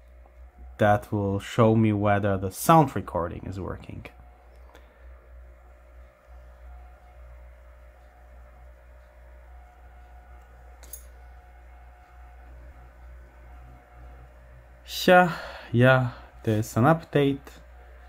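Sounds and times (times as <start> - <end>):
faint whine: 0.0 - 18.0
low hum: 0.0 - 18.0.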